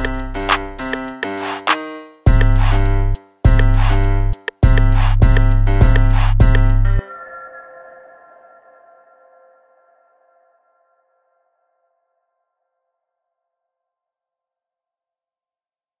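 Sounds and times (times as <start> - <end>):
hip-hop chord ringing out: 0.0 - 9.8.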